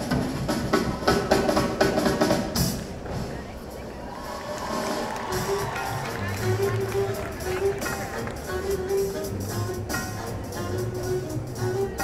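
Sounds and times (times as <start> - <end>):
crowd voices: 0.0 - 12.0
live jazz band playing: 0.0 - 12.0.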